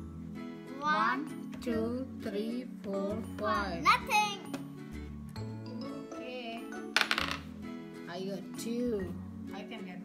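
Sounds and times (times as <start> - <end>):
light background music: 0.0 - 10.0
die clattering across a tabletop: 7.0 - 7.5.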